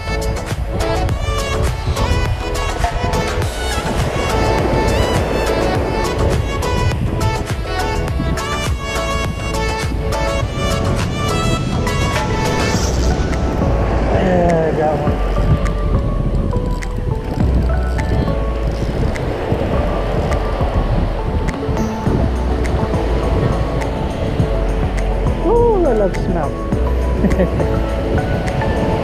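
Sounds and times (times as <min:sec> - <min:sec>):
background music: 0:00.0 - 0:29.0
surf washing up beach: 0:00.0 - 0:29.0
wind buffeting microphone: 0:00.0 - 0:29.0.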